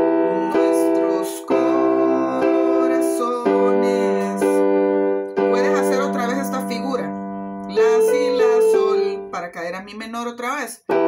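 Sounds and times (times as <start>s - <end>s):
piano chords on keyboard: 0.0s - 10.0s.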